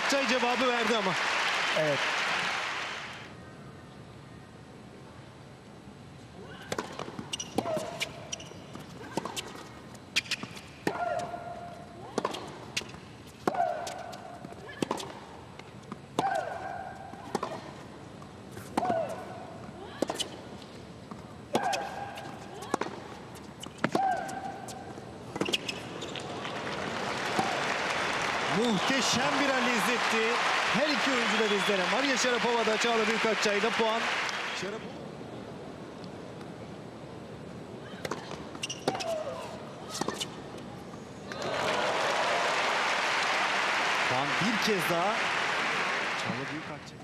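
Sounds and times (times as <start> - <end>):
crowd applause: 0.0 - 3.3, 26.2 - 34.8, 41.4 - 46.8
racket hitting tennis ball: 21.5 - 24.5.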